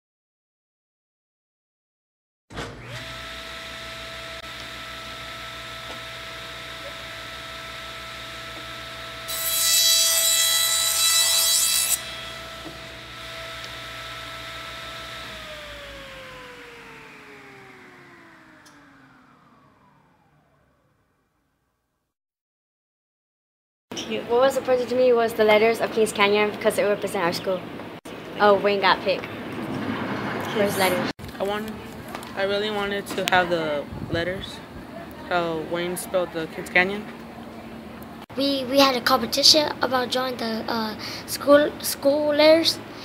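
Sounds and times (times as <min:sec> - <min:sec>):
power saw whining: 0:02.5 - 0:21.2
saw cutting through wood: 0:02.6 - 0:20.6
saw winding down: 0:02.6 - 0:21.5.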